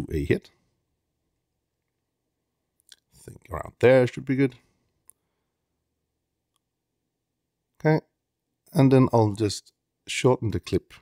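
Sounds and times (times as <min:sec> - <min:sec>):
man speaking: 0:00.0 - 0:00.6, 0:03.1 - 0:04.7, 0:07.8 - 0:11.0.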